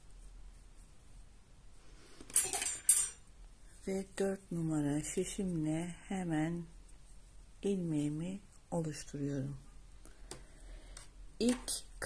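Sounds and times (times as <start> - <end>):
metal knitting needles clinking: 2.3 - 3.2.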